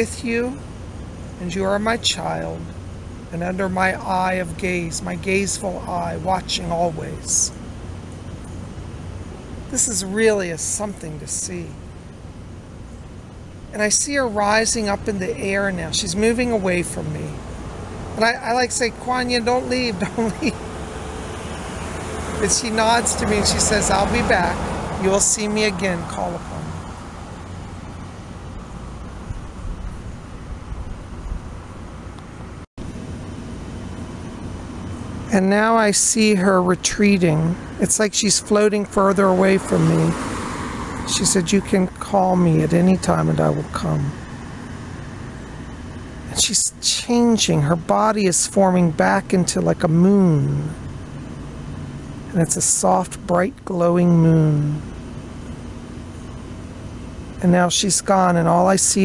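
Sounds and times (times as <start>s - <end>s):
low outdoor rumble: 0.0s - 40.2s, 40.8s - 59.0s.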